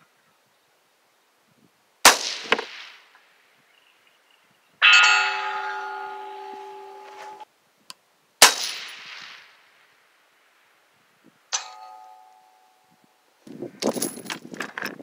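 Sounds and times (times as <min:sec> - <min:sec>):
rifle shot echoing: 0:02.0 - 0:03.1, 0:08.4 - 0:09.6
steel target ringing: 0:04.8 - 0:07.4, 0:11.5 - 0:12.6.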